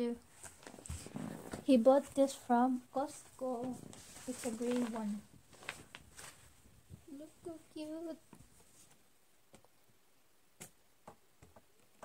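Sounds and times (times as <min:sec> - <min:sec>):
woman speaking: 0:01.6 - 0:05.3, 0:07.1 - 0:08.2.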